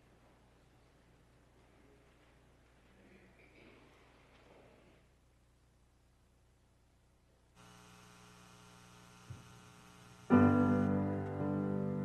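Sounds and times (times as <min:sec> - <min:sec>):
electrical mains hum: 0:05.2 - 0:11.4.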